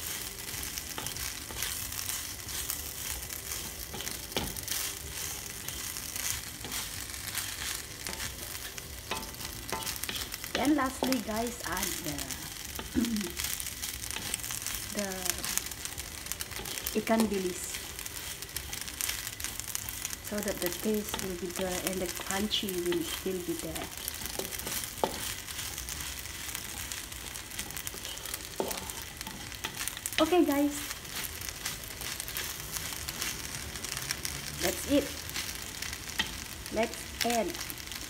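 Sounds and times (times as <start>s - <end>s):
pasta sizzling in a hot pan: 0.0s - 38.0s
spatula clicking and scraping: 0.1s - 34.3s, 35.1s - 36.6s.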